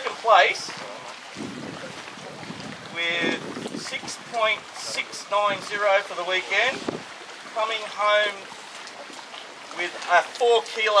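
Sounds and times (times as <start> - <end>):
wind noise on microphone: 0.6 - 5.7, 6.7 - 7.2.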